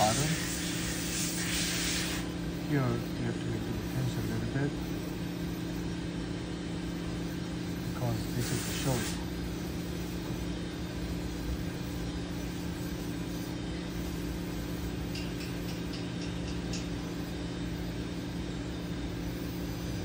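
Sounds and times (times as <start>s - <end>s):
motor humming: 0.0s - 14.9s.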